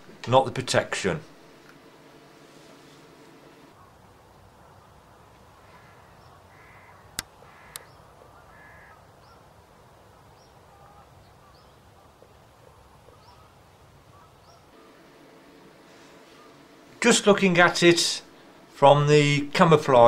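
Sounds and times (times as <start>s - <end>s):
small birds chirping: 3.8s - 9.5s, 10.1s - 15.1s
bird cawing: 4.6s - 9.4s, 10.5s - 12.3s, 13.1s - 15.0s, 16.2s - 16.7s.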